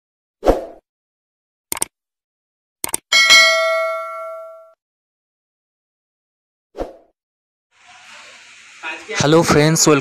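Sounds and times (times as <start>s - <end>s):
quick double clicks: 1.7s - 1.9s, 2.8s - 3.0s
bright bell-like ding: 3.1s - 4.8s.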